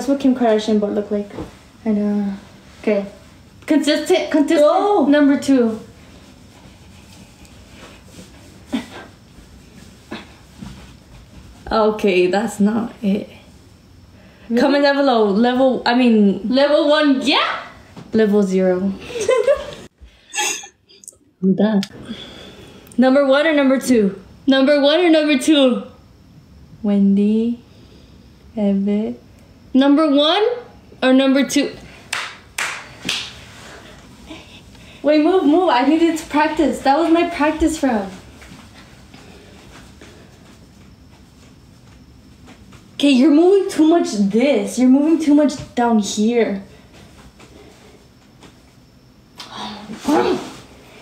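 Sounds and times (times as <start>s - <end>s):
hand claps: 32.1s - 33.4s.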